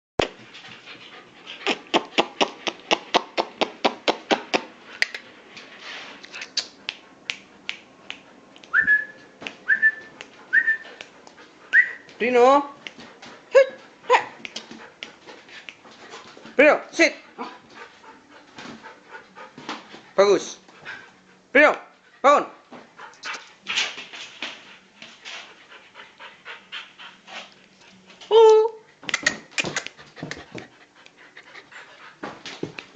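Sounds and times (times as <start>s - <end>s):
dog panting: 0.3s - 8.6s, 10.0s - 28.2s, 29.0s - 32.9s.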